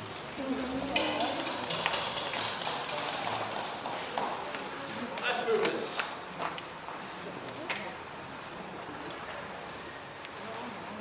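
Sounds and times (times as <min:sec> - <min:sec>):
hall room noise: 0:00.0 - 0:11.0
faint murmured voices: 0:00.3 - 0:11.0
sheet music and stands tapping: 0:01.0 - 0:04.5.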